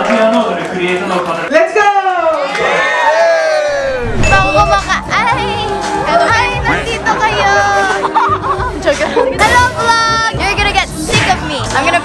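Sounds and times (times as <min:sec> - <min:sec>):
group of people cheering: 0:01.8 - 0:06.8.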